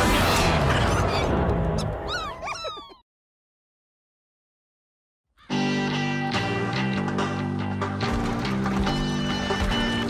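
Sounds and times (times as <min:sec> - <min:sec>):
cartoon creature squeaks and chirps: 0:02.1 - 0:03.0.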